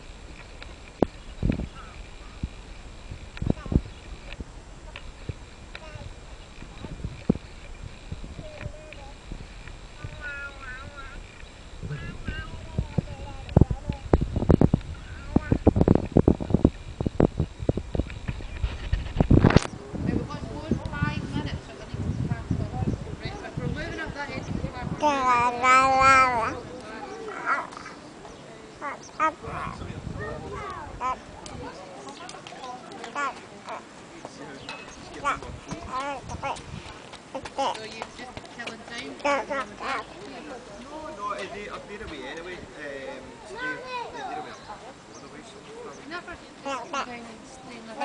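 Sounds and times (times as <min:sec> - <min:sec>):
baby vocalising: 0:25.0 - 0:26.6, 0:27.3 - 0:28.0, 0:30.5 - 0:31.2, 0:39.2 - 0:40.1.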